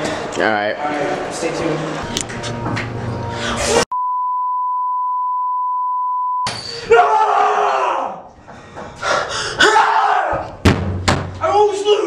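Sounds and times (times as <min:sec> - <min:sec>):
steady bleep tone: 0:03.9 - 0:06.5
loud yelling: 0:06.8 - 0:08.3, 0:09.6 - 0:10.6.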